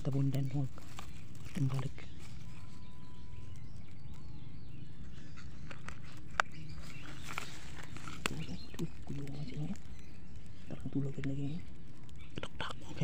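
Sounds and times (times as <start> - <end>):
light rustling: 0.0 - 4.3, 4.9 - 13.0
low outdoor background: 0.0 - 13.0.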